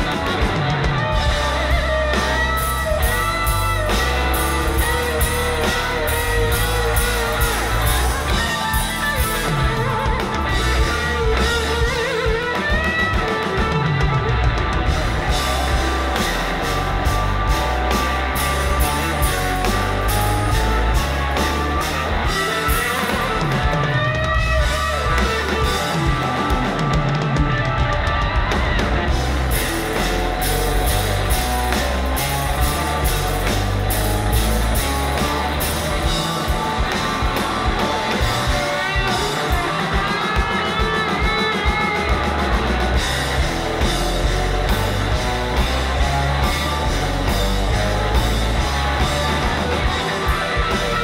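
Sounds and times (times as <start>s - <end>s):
drum kit: 0.0s - 51.0s
electric guitar lead with bends: 0.0s - 51.0s.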